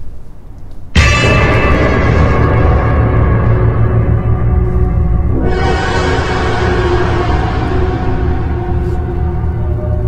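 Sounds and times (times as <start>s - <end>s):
horror film score drone: 1.0s - 10.0s.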